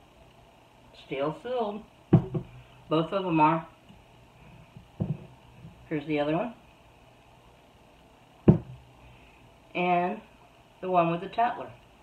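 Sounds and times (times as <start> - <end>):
glass jar knocking on hard surface: 2.2 - 2.5, 8.5 - 8.8.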